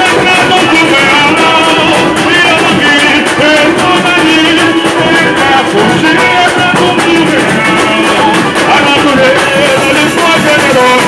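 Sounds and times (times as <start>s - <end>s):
person singing into a microphone: 0.0s - 11.0s
samba drum section: 0.0s - 11.0s.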